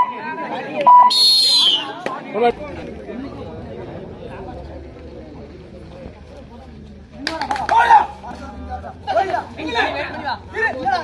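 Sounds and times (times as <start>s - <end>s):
voices talking over one another: 0.0s - 11.0s.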